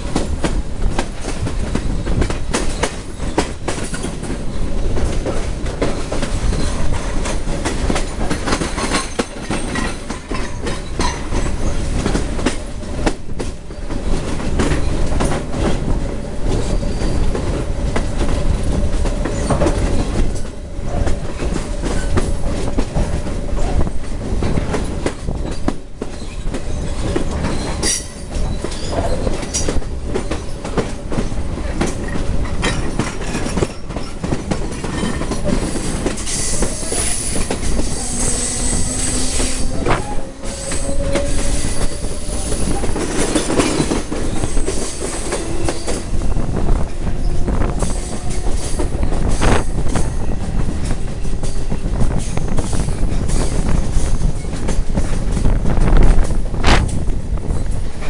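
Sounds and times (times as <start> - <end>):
rail clacks: 0.0 - 58.0
train wheels rumbling on rail: 0.0 - 58.0
high wheel squeal: 16.7 - 17.4, 35.8 - 43.1.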